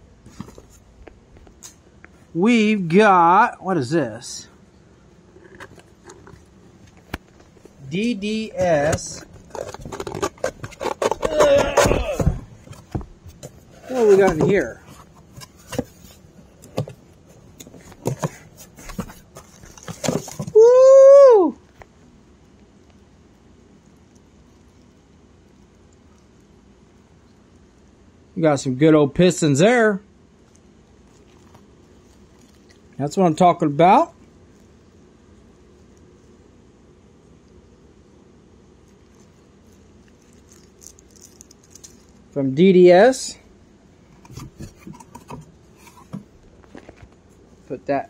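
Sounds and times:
low room hum: 0.0 - 48.0
cardboard boxes being handled: 0.2 - 1.0, 5.6 - 20.6, 44.1 - 47.4
plastic bag crinkling: 7.3 - 11.9, 31.0 - 33.1, 39.0 - 42.4.

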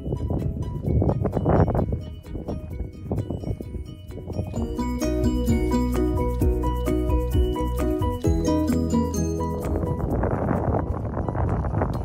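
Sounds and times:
wind buffeting microphone: 0.0 - 8.4, 9.6 - 12.0.

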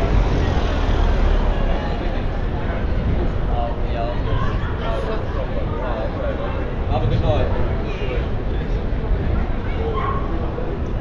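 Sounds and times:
car driving slowly past: 0.0 - 3.4
people chattering: 0.0 - 11.0.

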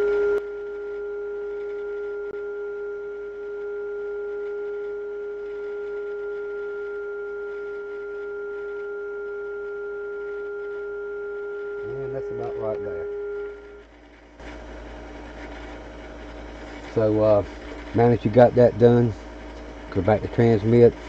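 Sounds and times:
steady radio test tone: 0.0 - 21.0.

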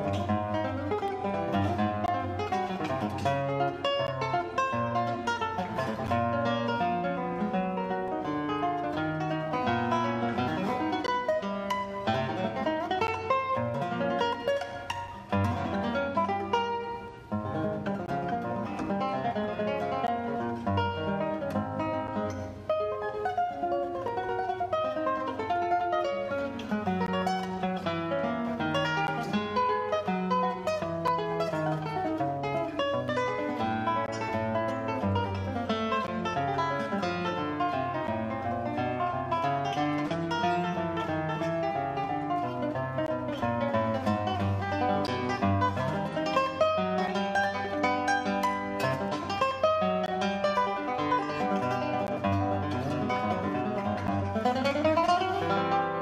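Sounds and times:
fingerstyle classical guitar: 0.0 - 56.0.

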